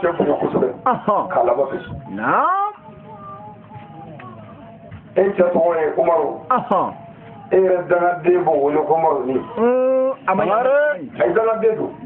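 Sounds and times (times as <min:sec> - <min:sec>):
man preaching into a microphone: 0:05.2 - 0:12.0.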